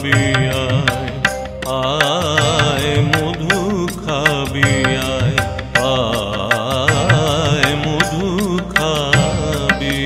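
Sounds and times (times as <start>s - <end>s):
ornamented melody line: 0.0s - 10.0s
percussion strokes: 0.0s - 10.0s.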